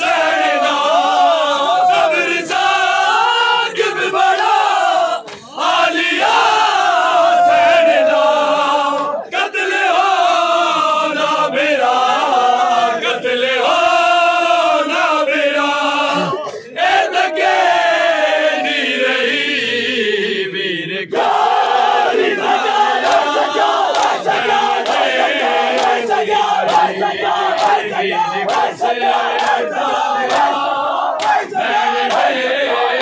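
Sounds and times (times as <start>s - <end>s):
men chanting in unison: 0.0s - 33.0s.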